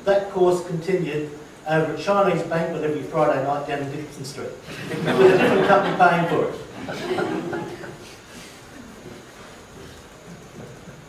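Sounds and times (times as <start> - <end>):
faint audience laughter: 4.7 - 8.1.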